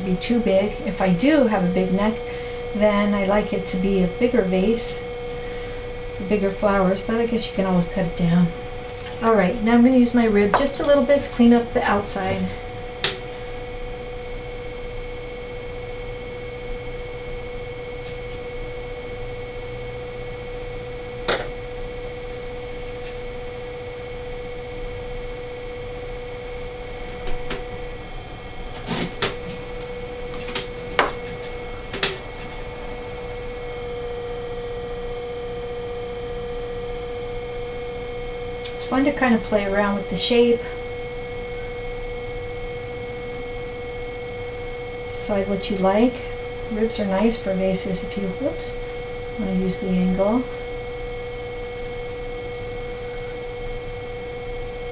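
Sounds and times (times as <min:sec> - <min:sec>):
potter's wheel motor humming: 0:00.0 - 0:54.9.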